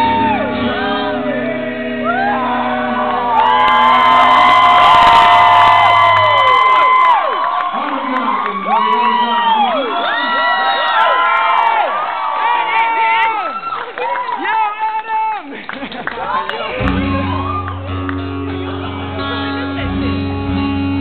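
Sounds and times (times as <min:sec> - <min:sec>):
audience cheering and whooping: 0:00.0 - 0:01.2, 0:02.0 - 0:19.8
rock band playing: 0:16.7 - 0:21.0.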